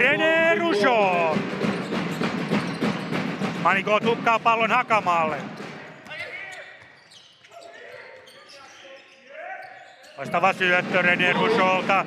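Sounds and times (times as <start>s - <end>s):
players calling out: 0.0s - 1.4s.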